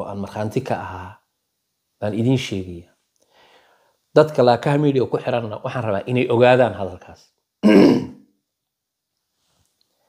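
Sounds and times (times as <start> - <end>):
man speaking: 0.0 - 1.2, 2.0 - 3.0, 4.1 - 8.1
man clearing throat: 7.6 - 8.2.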